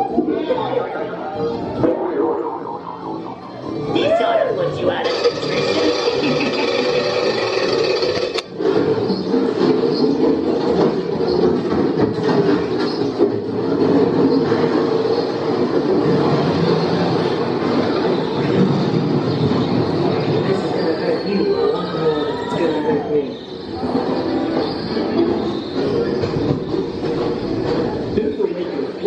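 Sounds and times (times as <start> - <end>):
ride show audio: 0.0 - 29.0
ride cab rumbling on track: 23.4 - 29.0.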